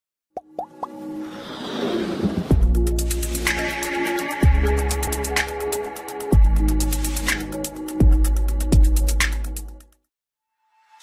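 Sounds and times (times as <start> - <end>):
plops gliding upward in pitch: 0.4 - 1.0
whoosh: 1.2 - 2.8.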